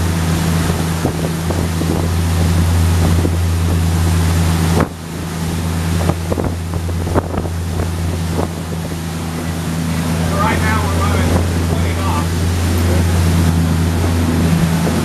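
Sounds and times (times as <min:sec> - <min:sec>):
boat diesel engine drone: 0:00.0 - 0:15.0
water noise: 0:00.0 - 0:15.0
wind noise: 0:00.0 - 0:15.0.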